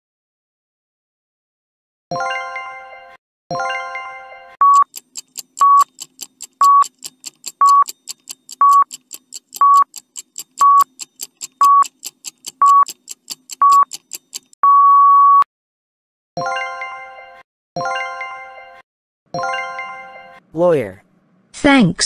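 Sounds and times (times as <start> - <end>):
short electronic beeps: 4.6 - 4.9, 5.6 - 5.9, 6.6 - 6.9, 7.6 - 7.9, 8.6 - 8.9, 9.6 - 9.9, 10.6 - 11.0, 11.6 - 11.9, 12.6 - 12.9, 13.6 - 14.0, 14.6 - 15.5
quick ticking: 4.6 - 14.6.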